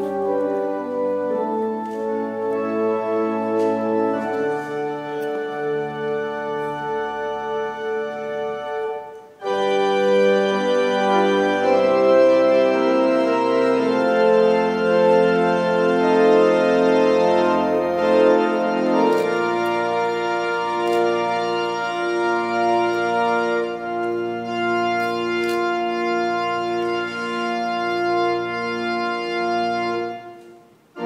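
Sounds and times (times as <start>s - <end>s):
organ playing sustained chords: 0.0s - 31.0s.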